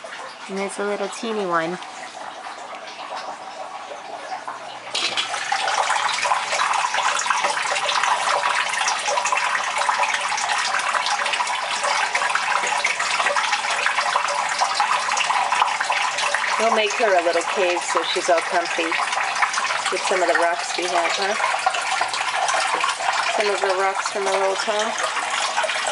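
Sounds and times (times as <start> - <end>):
water running and splashing: 0.0 - 25.9.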